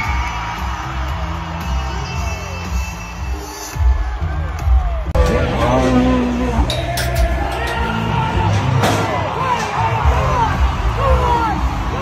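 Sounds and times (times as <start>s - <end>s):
music: 0.0s - 12.0s.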